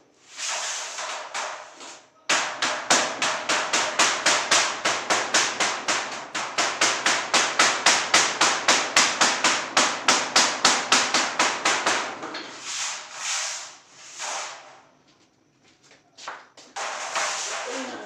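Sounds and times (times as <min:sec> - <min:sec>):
wooden mallet beating metal sheet: 0:00.4 - 0:12.6, 0:16.8 - 0:18.0.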